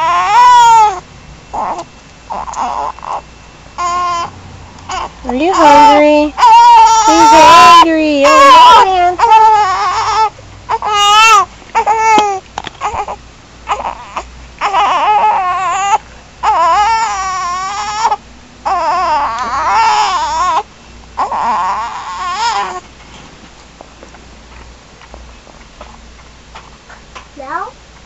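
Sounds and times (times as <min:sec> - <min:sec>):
baby crying: 0:00.0 - 0:01.0, 0:01.6 - 0:04.3, 0:04.9 - 0:22.8.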